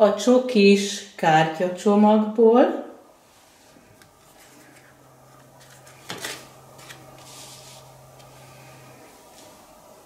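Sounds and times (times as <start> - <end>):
cards rubbing together: 5.6 - 7.9.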